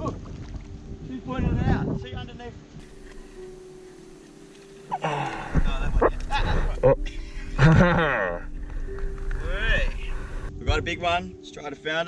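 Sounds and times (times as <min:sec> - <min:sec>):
wind buffeting microphone: 0:00.0 - 0:04.2.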